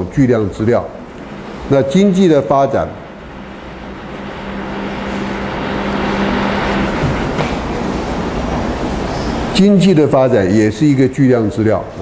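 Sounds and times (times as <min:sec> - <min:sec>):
mechanical rumble with low hum: 0:00.8 - 0:09.8.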